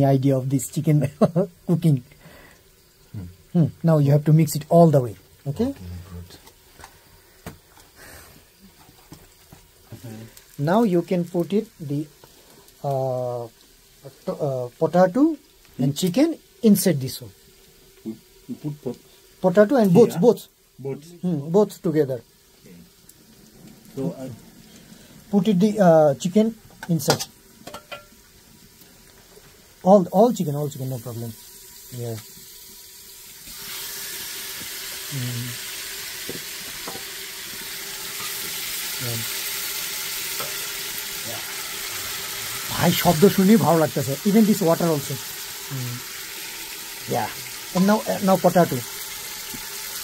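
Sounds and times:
food frying in bubbling oil: 0.0 - 50.0.

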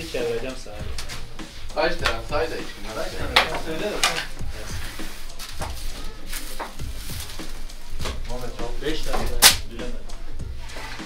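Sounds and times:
wooden peel scraping oven floor: 0.0 - 7.6.

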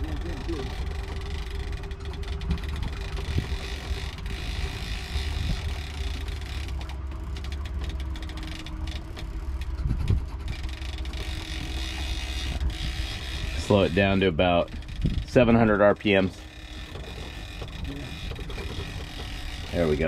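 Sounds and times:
boat engine running steadily: 0.0 - 20.0.

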